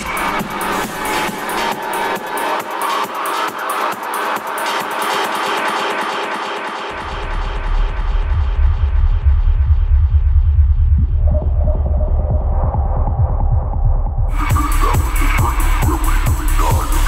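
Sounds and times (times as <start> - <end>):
techno music: 0.0 - 17.0.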